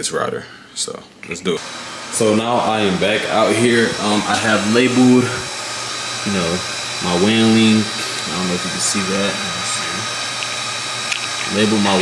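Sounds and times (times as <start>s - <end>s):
router cooling fans: 1.4s - 12.0s.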